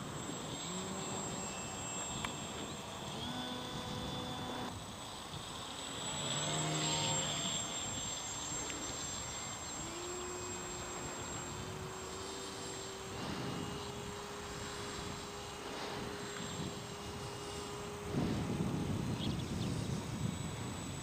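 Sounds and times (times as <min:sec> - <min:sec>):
small propeller motor whine: 0:00.0 - 0:21.0.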